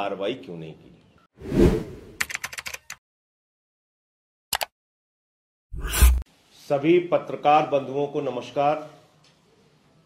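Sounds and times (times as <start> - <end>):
keyboard typing clicks: 2.2 - 3.0, 4.5 - 4.7.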